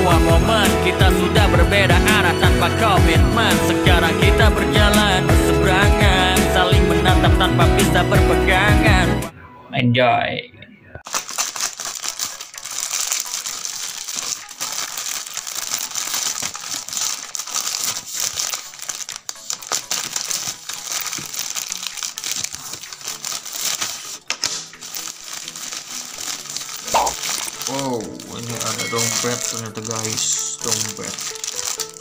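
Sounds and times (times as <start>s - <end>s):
packaging crinkling: 11.0s - 32.0s.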